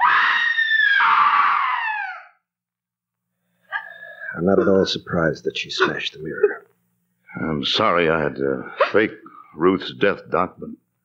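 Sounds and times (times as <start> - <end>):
woman screaming: 0.0 - 2.4.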